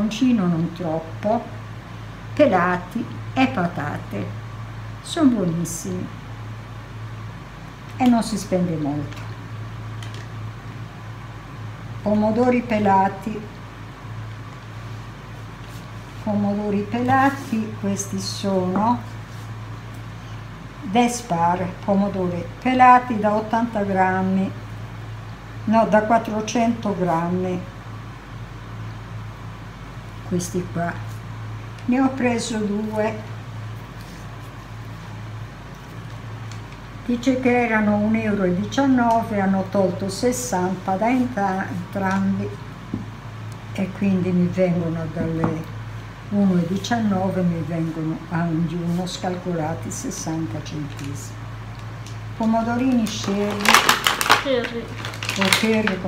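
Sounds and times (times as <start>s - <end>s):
faint background noise: 0.0s - 56.0s
faint room hiss: 0.0s - 56.0s
steady low hum: 0.0s - 56.0s.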